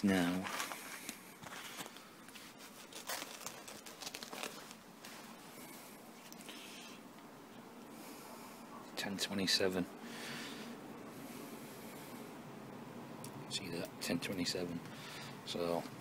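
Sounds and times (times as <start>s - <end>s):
soft hiss: 0.0s - 16.0s.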